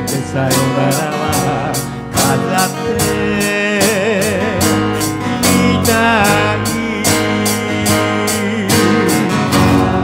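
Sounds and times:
bass: 0:00.0 - 0:10.0
drum kit beat: 0:00.0 - 0:10.0
strummed acoustic guitars: 0:00.0 - 0:10.0.

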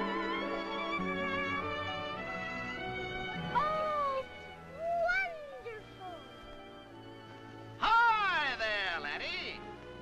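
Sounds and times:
soft orchestral music: 0:00.0 - 0:10.0.

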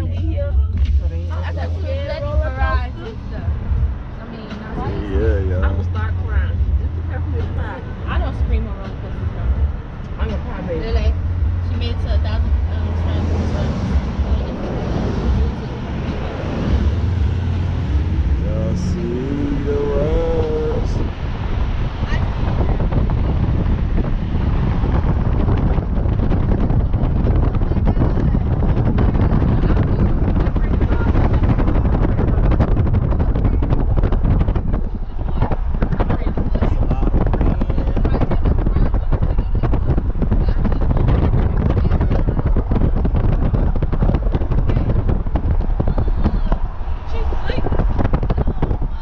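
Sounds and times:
car road noise: 0:00.0 - 0:49.0
wind buffeting microphone: 0:00.0 - 0:49.0.

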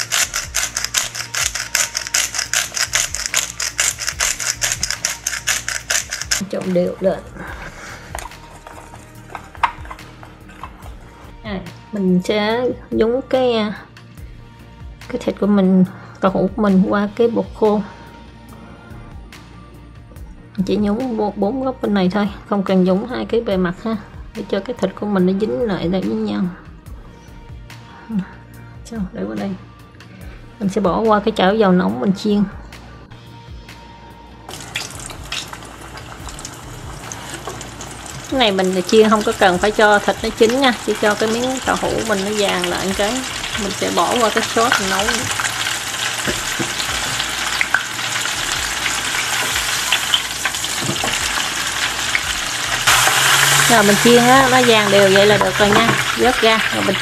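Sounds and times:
deep-frying sizzle and crackles: 0:34.5 - 0:57.0.

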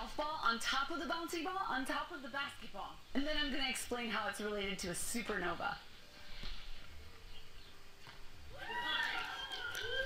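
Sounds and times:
outdoor air noise: 0:00.0 - 0:10.0.

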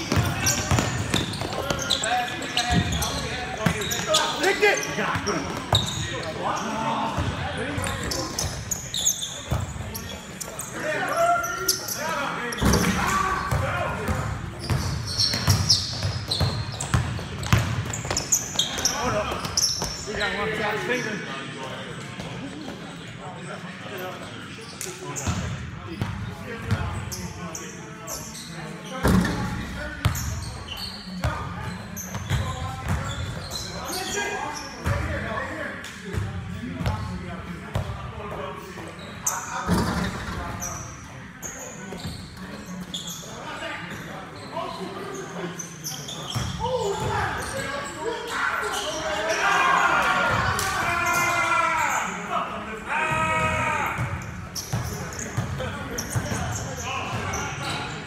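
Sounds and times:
basketball bouncing on gym court: 0:00.0 - 0:02.0, 0:12.6 - 0:20.0
players calling out: 0:00.0 - 0:21.2, 0:45.9 - 0:55.2.

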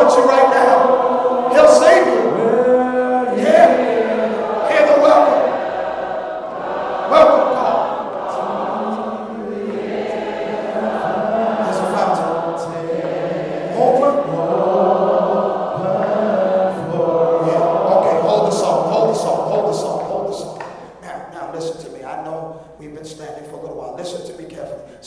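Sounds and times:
choir singing a hymn: 0:00.0 - 0:21.8.

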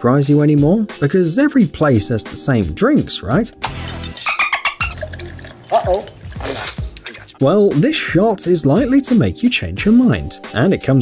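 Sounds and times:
background music: 0:00.0 - 0:11.0
liquid pouring into a glass: 0:03.6 - 0:04.2, 0:04.8 - 0:06.8
person speaking: 0:05.6 - 0:08.1.

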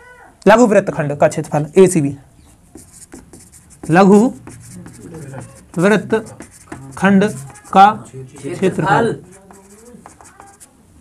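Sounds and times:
marker writing on whiteboard: 0:02.4 - 0:10.8
person speaking a syllable: 0:04.7 - 0:10.8.

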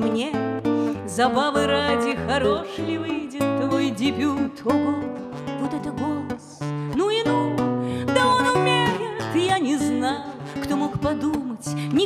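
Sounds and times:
fingerpicked classical guitar: 0:00.0 - 0:12.0
woman singing: 0:00.0 - 0:12.0.

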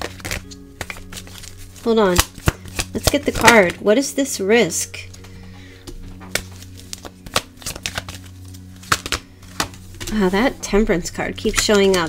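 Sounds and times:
cards clicking and tapping: 0:00.0 - 0:03.8, 0:05.1 - 0:10.3, 0:11.4 - 0:12.0.

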